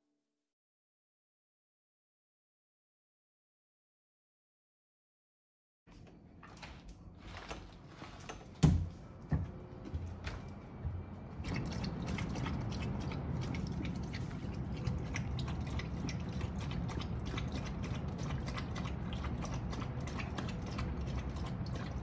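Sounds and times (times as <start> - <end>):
dog lapping water from metal bowl: 11.3 - 22.0.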